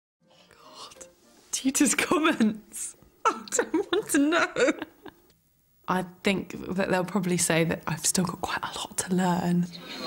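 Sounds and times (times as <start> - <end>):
faint whispering: 0.3 - 1.1
woman speaking: 0.8 - 4.8, 5.9 - 9.7.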